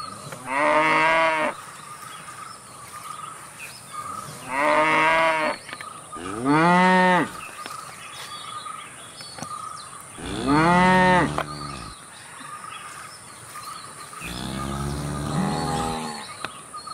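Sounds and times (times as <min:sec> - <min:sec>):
cattle mooing: 0:10.2 - 0:11.9, 0:14.2 - 0:16.2.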